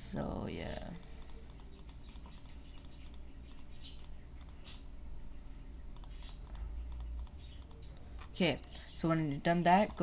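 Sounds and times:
low steady hum: 0.0 - 10.0
computer mouse clicking: 0.8 - 4.9, 5.9 - 8.4.

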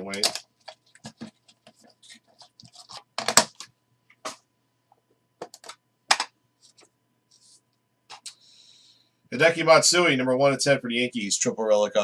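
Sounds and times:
plastic case clicks and rattles: 0.1 - 1.4, 5.4 - 6.3.

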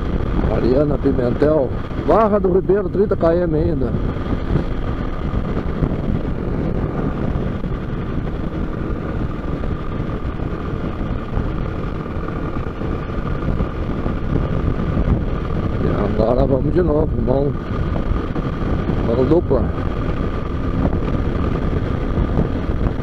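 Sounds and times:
motorcycle engine cruising: 0.0 - 23.0
wind rushing over microphone: 0.0 - 23.0.

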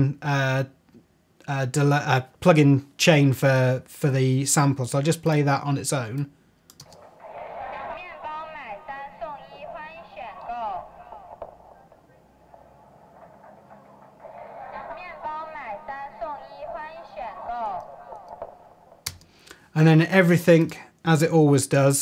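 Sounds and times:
distorted recorded voice announcement: 6.9 - 19.0.

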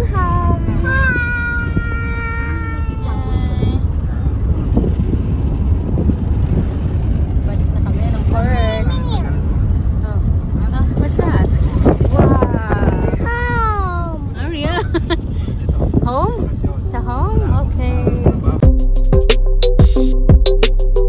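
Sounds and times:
car cabin road and wind rumble: 0.0 - 18.6
child's wordless vocalizing: 13.2 - 14.3.

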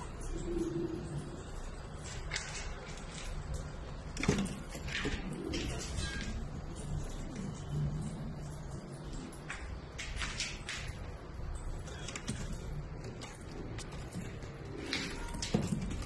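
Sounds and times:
pigeons cooing: 0.0 - 16.0.

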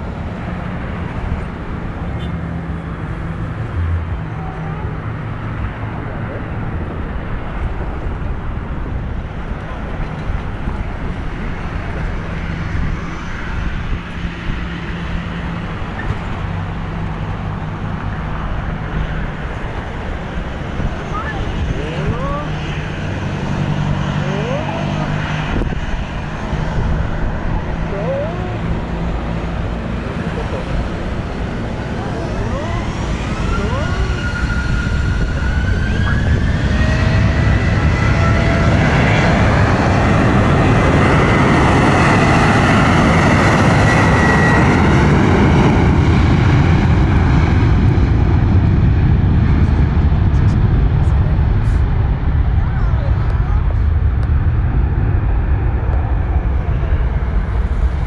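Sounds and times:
jet engine roar: 2.9 - 58.0
jet engines whining: 17.0 - 58.0.

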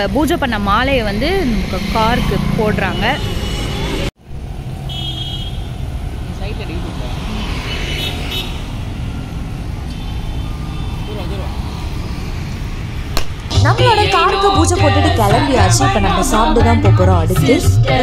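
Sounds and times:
street traffic noise: 0.0 - 18.0
background voices: 13.5 - 18.0
person speaking: 13.6 - 17.6.

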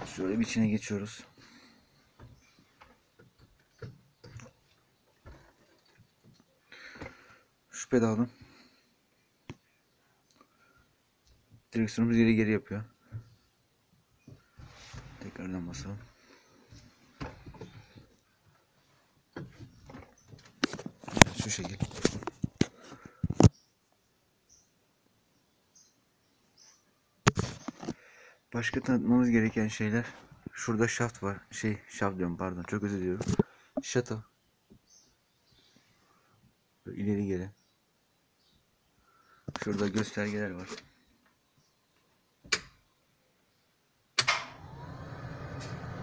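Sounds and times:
electrics switching on: 44.2 - 46.0.

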